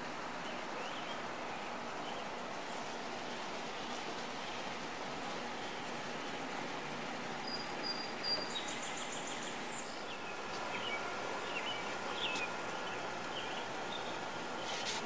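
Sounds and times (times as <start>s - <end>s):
outdoor background hiss: 0.0s - 15.0s
bird high chirps: 7.4s - 14.2s.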